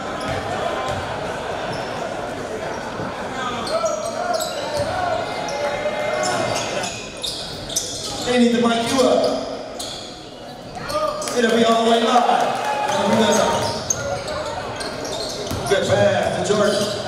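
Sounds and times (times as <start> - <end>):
crowd talking: 0.0 - 17.0.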